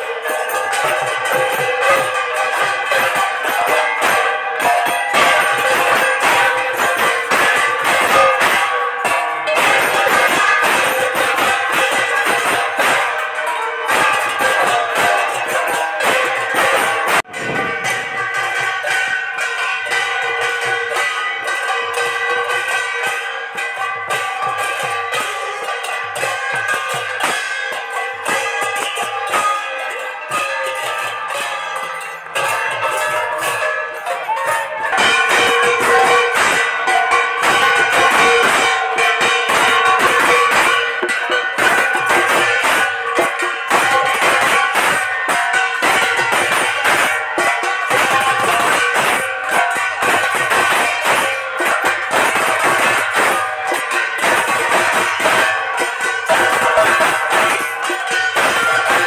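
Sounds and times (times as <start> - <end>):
brass hand cymbals ringing: 0.0 - 59.0
drum strokes: 0.0 - 59.0.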